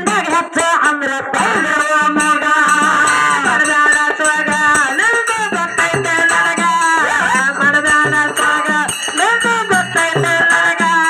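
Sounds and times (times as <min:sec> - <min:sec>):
hand percussion: 0:00.0 - 0:11.0
woman singing into a microphone: 0:00.0 - 0:11.0.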